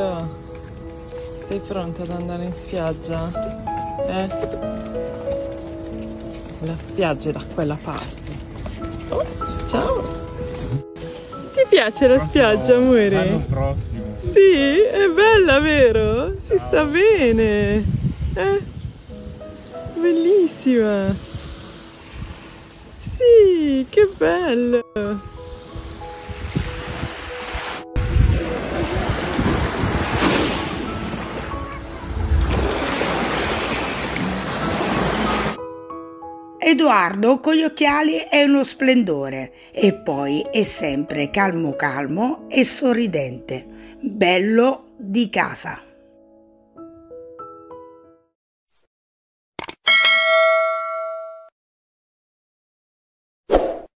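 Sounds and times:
soft music: 0.0s - 48.4s
wind rumbling on microphone: 12.2s - 20.0s, 20.7s - 24.5s, 25.1s - 35.6s
sea waves washing on shore: 20.3s - 23.1s, 25.8s - 35.6s
notification bell ding: 49.9s - 51.5s.

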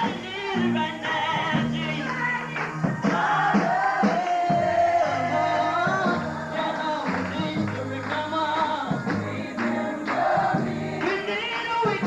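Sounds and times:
band playing with drums: 0.0s - 12.0s
woman singing lead vocal: 0.0s - 12.0s
choir singing: 3.0s - 12.0s.

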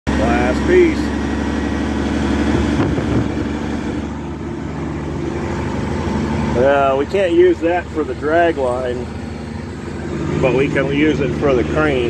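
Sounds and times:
diesel truck engine running: 0.1s - 12.0s.

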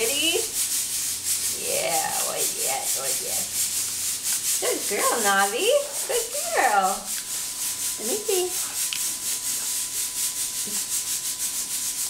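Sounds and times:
toothbrush scrubbing teeth: 0.0s - 12.0s.

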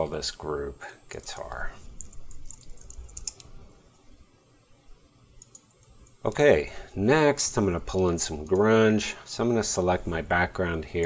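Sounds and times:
computer keyboard typing: 1.3s - 3.5s, 5.4s - 6.2s.

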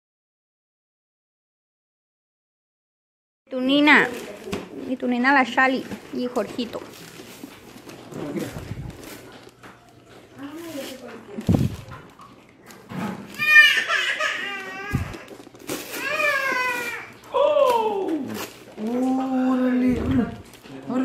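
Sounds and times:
wrapping paper rustling: 3.6s - 21.0s
family voices: 8.0s - 21.0s
dull thumps of present: 11.4s - 12.0s
child babbling: 13.4s - 15.3s.

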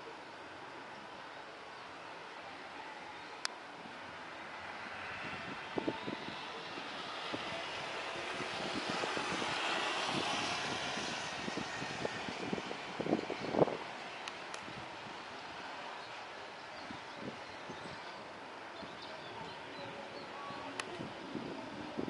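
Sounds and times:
distant jet engines roaring: 0.0s - 22.0s.

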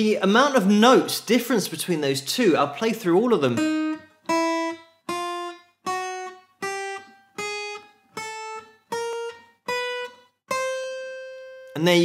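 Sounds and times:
acoustic guitar single notes: 3.4s - 12.0s.

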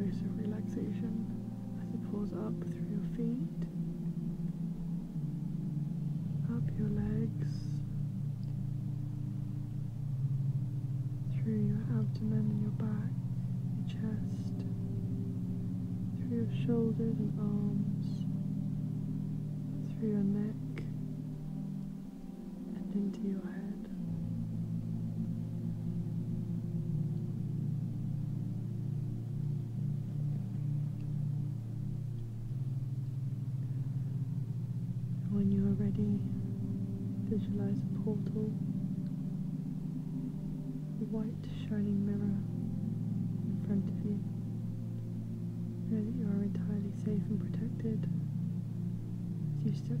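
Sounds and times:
low drone of held tones: 0.0s - 50.0s.

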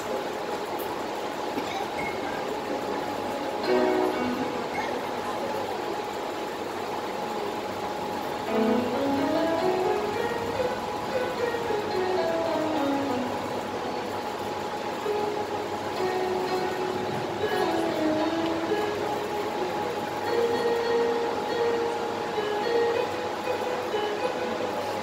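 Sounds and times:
electronic keyboard melody: 0.0s - 25.0s.

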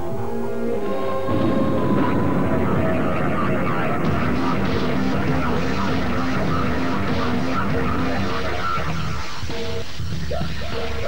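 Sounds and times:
advert music: 0.0s - 11.0s
rushing rumbling sound effect: 1.3s - 8.5s.

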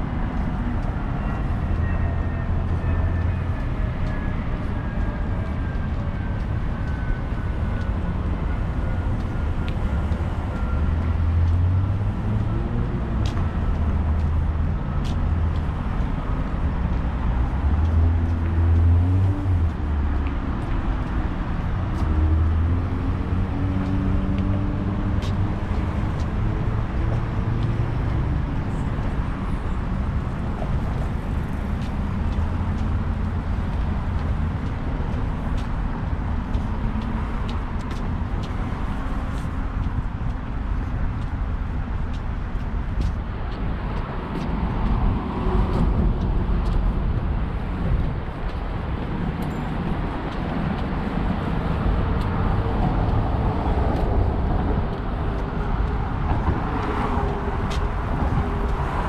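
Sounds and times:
background traffic noise: 0.0s - 59.0s
car and bus engines passing: 0.0s - 59.0s.

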